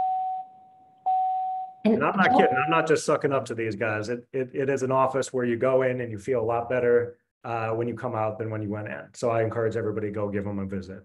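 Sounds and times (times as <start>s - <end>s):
electronic notification chime: 2.0s - 2.9s.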